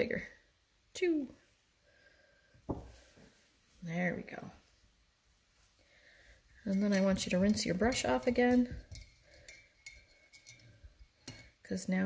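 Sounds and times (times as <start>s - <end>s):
paintbrush clinking against glass jar: 6.7s - 11.6s.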